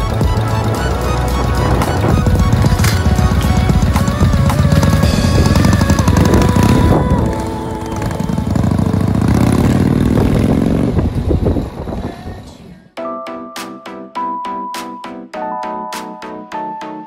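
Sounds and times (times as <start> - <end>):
motorcycle engine pulling away: 0.0 - 12.4.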